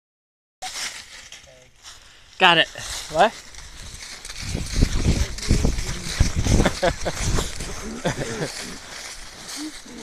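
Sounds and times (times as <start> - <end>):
dry leaves rustling: 0.6 - 10.0.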